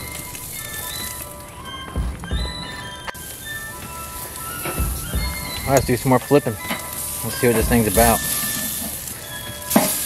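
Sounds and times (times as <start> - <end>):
steak sizzling on a grill: 0.0 - 1.9, 2.9 - 10.0.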